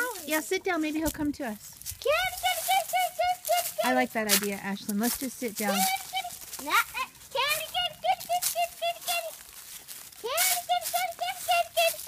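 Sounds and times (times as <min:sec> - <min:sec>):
person speaking: 0:00.0 - 0:09.4
girl calling in sing-song voice: 0:02.0 - 0:04.0, 0:05.6 - 0:06.5, 0:07.4 - 0:09.4, 0:10.2 - 0:12.0.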